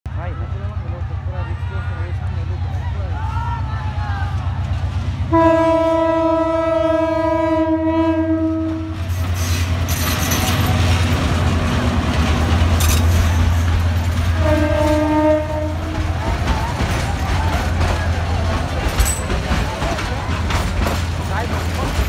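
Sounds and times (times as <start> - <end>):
locomotive engine rumble: 0.1 - 22.0
train clattering by: 0.1 - 22.0
locomotive horn blast: 5.2 - 9.1, 14.3 - 16.1.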